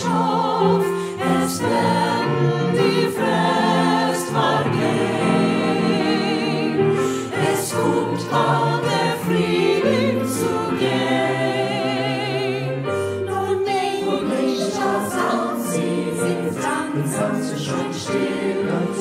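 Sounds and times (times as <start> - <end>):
mixed choir singing: 0.0 - 19.0
piano accompaniment: 0.0 - 19.0.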